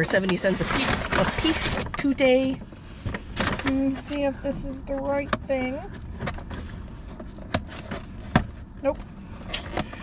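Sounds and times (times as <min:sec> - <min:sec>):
paper bag rustling: 0:00.0 - 0:02.0.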